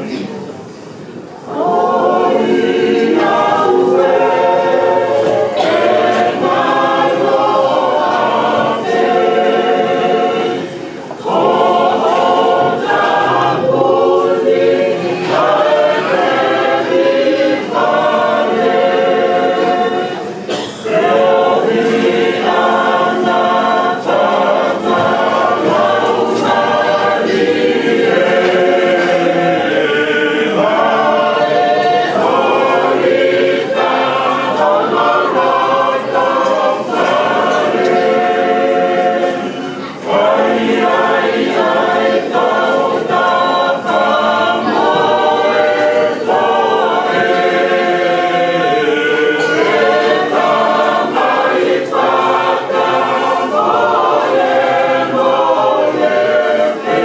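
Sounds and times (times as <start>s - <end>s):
choir singing a hymn a cappella: 0.0s - 57.0s.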